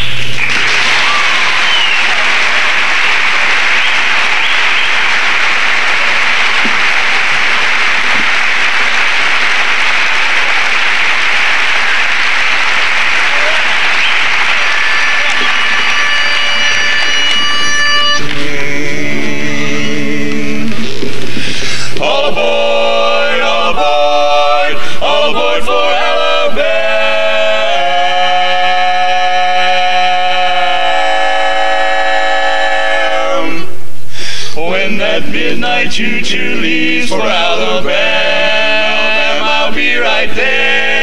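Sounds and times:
audience applauding: 0.3s - 18.2s
steady pitched note: 14.4s - 20.5s
male quartet singing a cappella: 18.2s - 33.7s, 34.5s - 41.0s.

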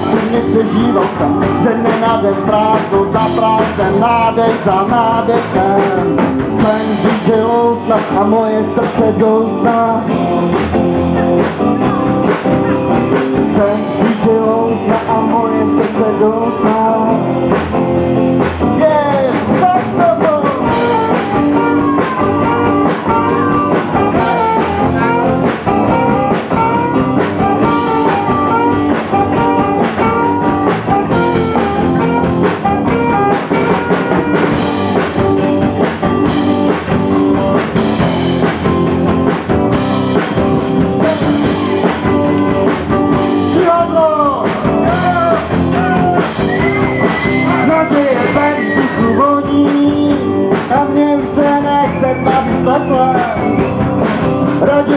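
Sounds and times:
drum kit: 0.0s - 54.9s
electric guitar: 0.0s - 54.9s
saxophone melody: 20.6s - 35.5s.

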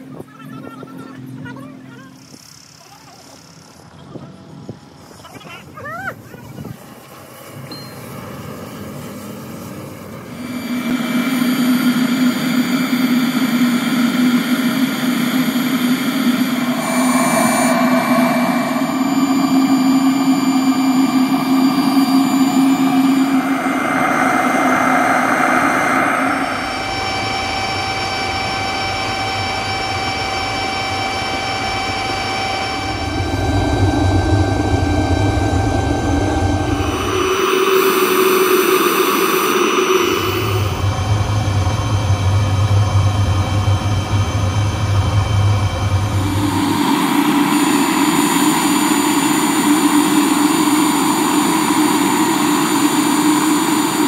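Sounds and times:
furnace blower whining: 6.6s - 54.0s
deep low rumble of flame: 12.0s - 28.7s, 31.6s - 48.6s.

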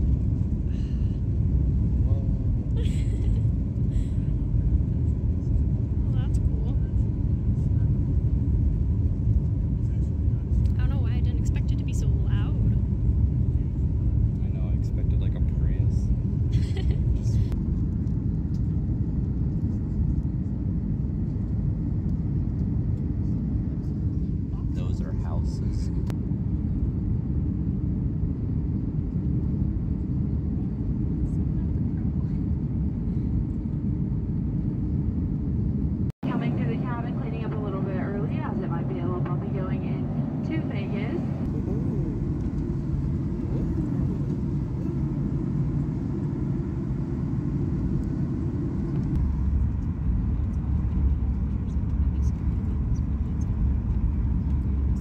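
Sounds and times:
jet engine rumble in cabin: 0.0s - 55.0s.

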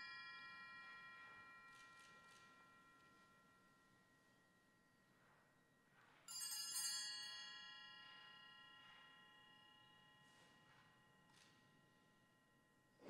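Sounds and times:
altar bells ringing: 0.0s - 5.1s, 6.3s - 13.0s.

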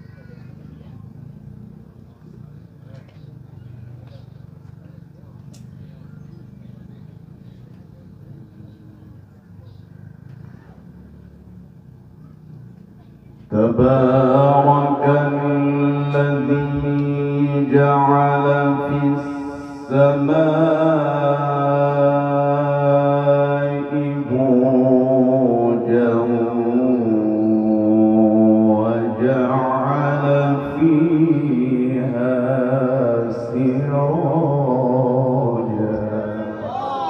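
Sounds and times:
low background noise: 0.0s - 37.0s
man chanting melodic recitation: 13.5s - 37.0s.

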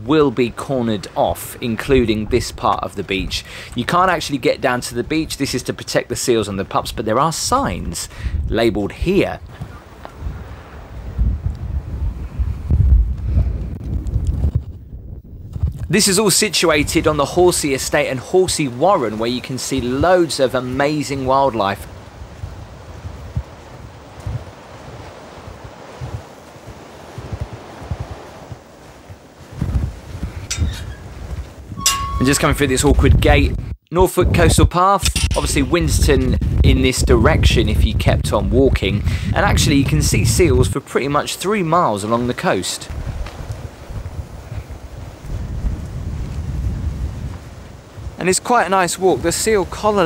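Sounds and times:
wind buffeting microphone: 0.0s - 41.2s, 42.9s - 50.0s
steady rustle: 21.8s - 32.7s
metal gate latch clinks: 30.5s - 31.0s, 31.8s - 32.5s, 35.0s - 35.7s.

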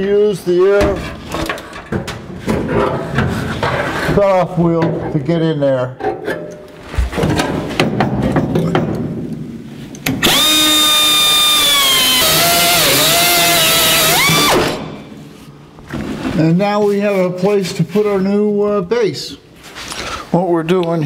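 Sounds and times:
knocks and clatter: 6.0s - 9.3s
cutoff wheel cutting steel: 10.2s - 15.0s.

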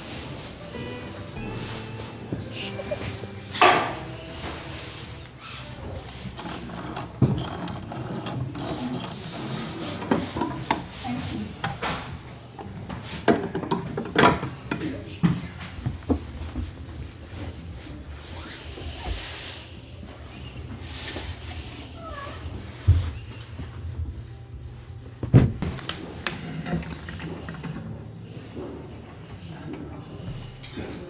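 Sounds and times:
blankets being handled: 0.0s - 5.6s
telephone rotary dial spinning: 6.3s - 9.4s.

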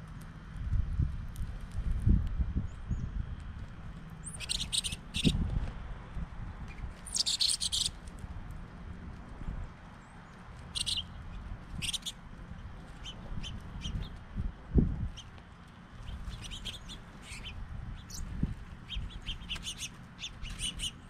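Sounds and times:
songbirds chirping: 2.6s - 21.0s.

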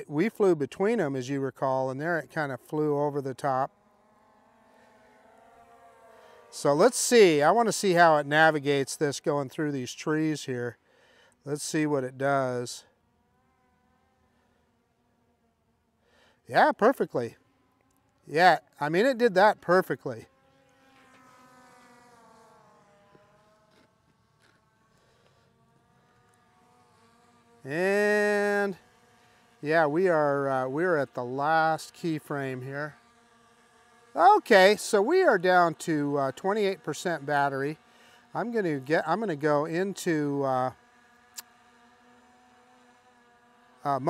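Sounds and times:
man saying uh: 0.0s - 3.7s, 6.5s - 10.8s, 11.5s - 12.8s, 16.5s - 17.3s, 18.3s - 20.2s, 27.7s - 28.8s, 29.6s - 32.9s, 34.2s - 37.8s, 38.4s - 40.8s
faint drone propeller whine: 0.0s - 44.0s
faint steady hum: 0.0s - 44.0s.

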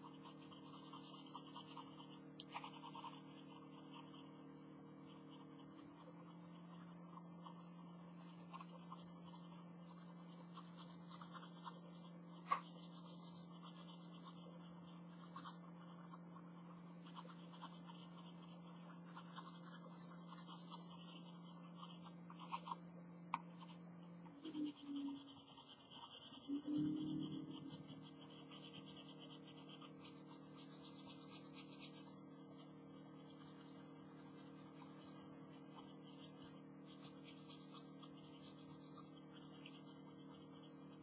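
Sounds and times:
felt-tip pen scratching on paper: 0.0s - 22.8s, 23.4s - 23.8s, 24.4s - 41.0s
faint steady hum: 0.0s - 41.0s.

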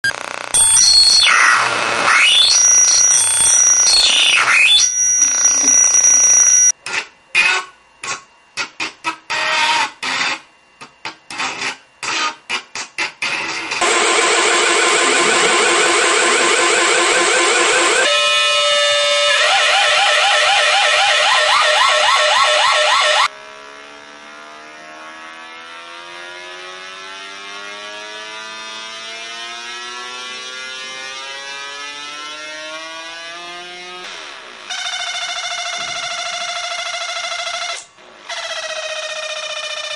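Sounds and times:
electronic oscillator tone: 0.0s - 6.8s, 13.8s - 39.9s.

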